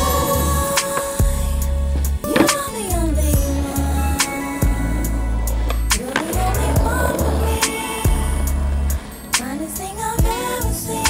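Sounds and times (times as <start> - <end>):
r and b song with bass beat: 0.0 - 11.0
skateboard wheels rolling: 0.0 - 11.0
skateboard landing clack: 2.3 - 2.9.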